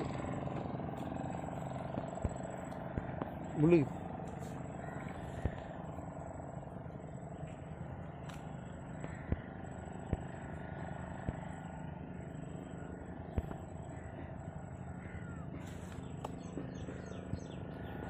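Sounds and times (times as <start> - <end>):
engine hum: 0.0 - 18.0.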